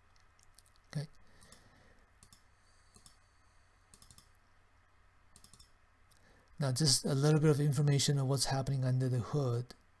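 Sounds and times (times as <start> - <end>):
computer mouse clicks: 0.1 - 3.3, 3.9 - 4.4, 5.3 - 6.6.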